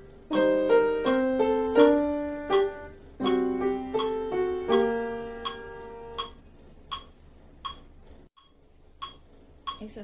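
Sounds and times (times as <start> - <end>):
piano notes: 0.0 - 6.5
metronome ticking: 0.2 - 10.0.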